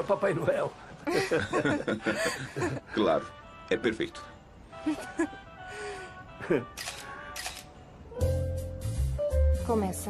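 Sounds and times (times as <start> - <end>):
soft background music: 0.0 - 10.0
camera shutter clicks: 6.7 - 7.8.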